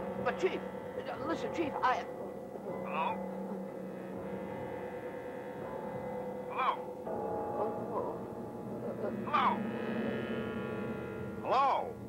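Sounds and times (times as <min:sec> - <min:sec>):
buzzy synthesizer drone: 0:00.0 - 0:12.0.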